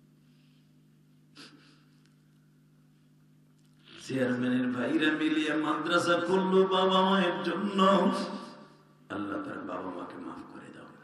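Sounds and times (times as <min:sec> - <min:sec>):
man chanting a sermon: 0:03.9 - 0:11.0.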